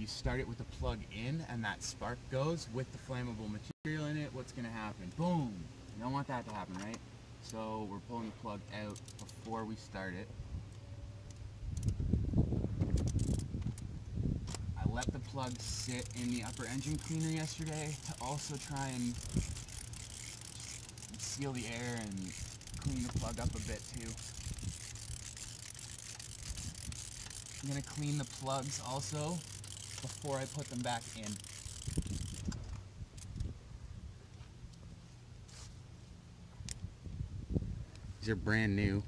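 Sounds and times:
socket ratchet clicking: 8.8s - 9.5s, 12.8s - 13.8s, 14.5s - 33.5s.

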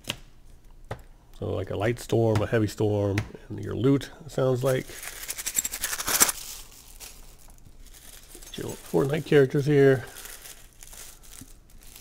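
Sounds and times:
tissue paper crinkling: 4.6s - 12.0s.

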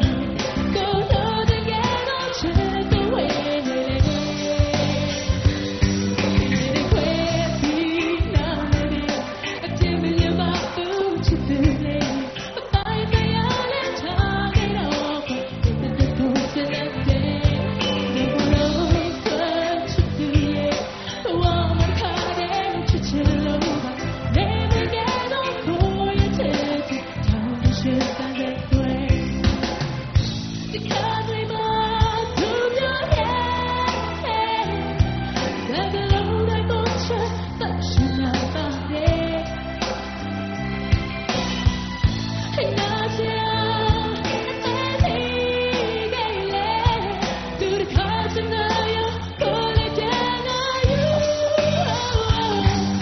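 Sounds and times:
woman singing into a microphone: 0.0s - 29.8s, 30.6s - 40.6s, 42.4s - 53.0s
band playing pop music: 0.0s - 53.0s
steady drum beat: 0.0s - 53.0s.

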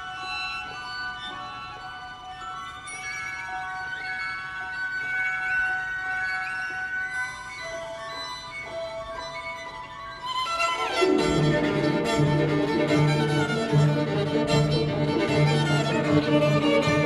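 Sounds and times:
bell-like celesta: 0.0s - 17.0s
solo violin high notes: 10.2s - 17.0s
orchestra with low strings: 10.3s - 17.0s.

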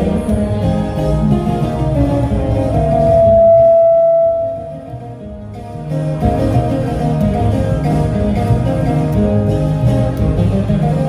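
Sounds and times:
acoustic guitar: 0.0s - 11.0s.

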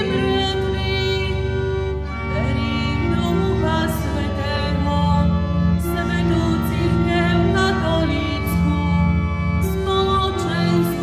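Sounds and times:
person singing a hymn: 0.0s - 11.0s
sustained instrumental chords: 0.0s - 11.0s.

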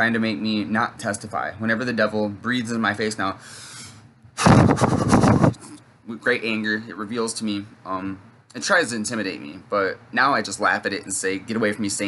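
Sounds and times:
man blowing breath onto microphone: 3.4s - 5.6s.

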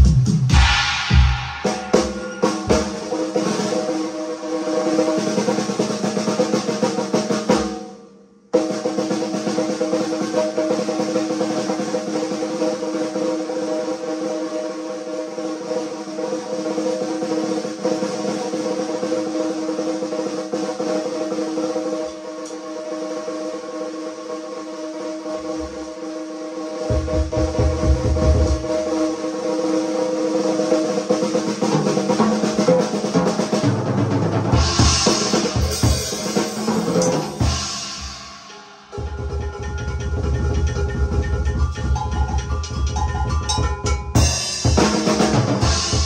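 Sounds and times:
paradiddle rolls on snare drum: 0.6s - 7.8s, 26.8s - 46.0s.

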